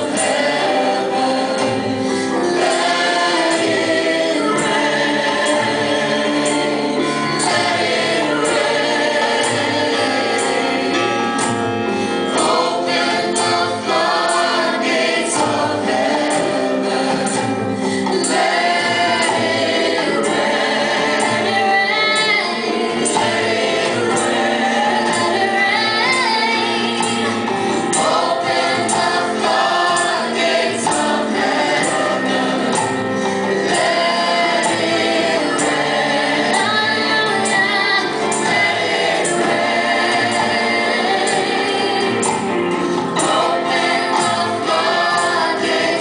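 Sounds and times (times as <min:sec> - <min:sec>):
drums: 0:00.0 - 0:46.0
electric guitars: 0:00.0 - 0:46.0
group singing gospel: 0:00.0 - 0:46.0
keyboard: 0:00.0 - 0:46.0.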